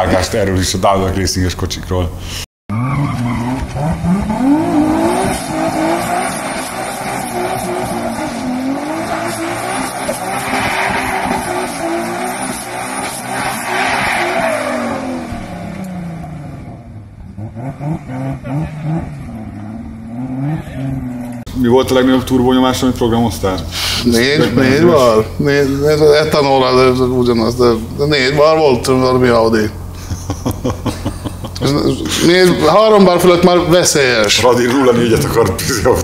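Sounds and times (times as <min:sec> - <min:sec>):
car engine revving: 0:02.7 - 0:35.8
tyres squealing: 0:05.5 - 0:15.2.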